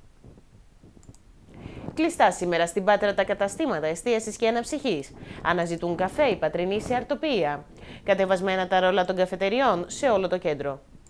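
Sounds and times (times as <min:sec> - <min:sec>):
woman inhaling: 0:01.5 - 0:02.0, 0:05.1 - 0:05.5, 0:07.7 - 0:08.1.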